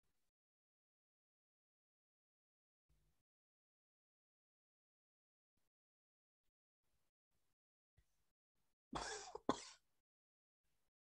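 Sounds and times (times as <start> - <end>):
person coughing: 9.0 - 9.8.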